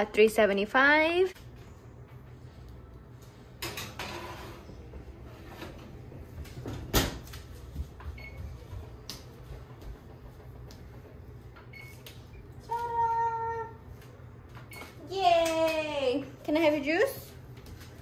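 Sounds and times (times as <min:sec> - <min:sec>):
baking tray scraping on oven rack: 0:03.8 - 0:06.0.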